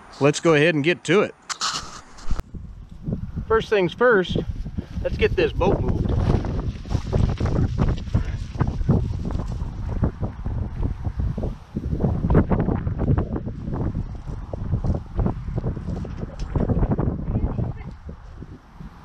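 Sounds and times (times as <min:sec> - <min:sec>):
wind buffeting microphone: 0:02.0 - 0:19.0.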